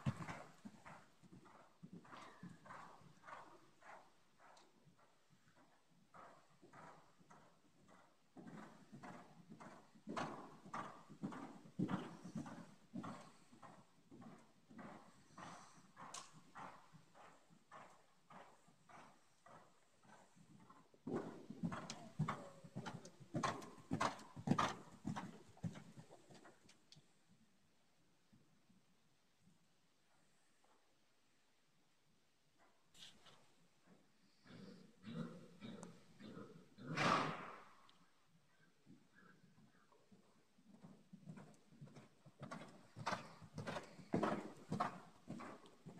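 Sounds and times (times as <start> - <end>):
horse hoofbeats on sand: 0.0 - 26.6, 40.7 - 45.9
horse snorting: 34.4 - 37.8.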